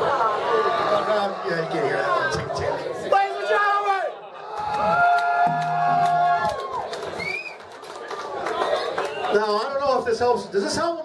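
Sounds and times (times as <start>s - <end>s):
audience whooping and cheering: 3.5s - 9.4s.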